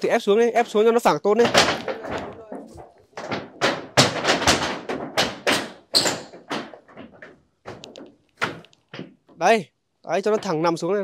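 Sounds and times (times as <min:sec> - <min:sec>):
knocks on corrugated metal roof: 0:01.4 - 0:09.3.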